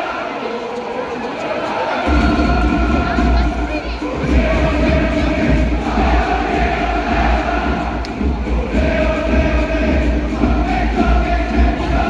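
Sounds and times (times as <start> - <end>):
stadium crowd chanting: 0.0 - 12.0.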